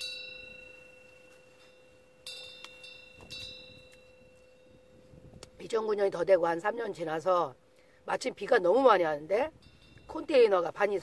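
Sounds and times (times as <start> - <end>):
small bell ringing: 0.0 - 5.3, 9.5 - 10.6.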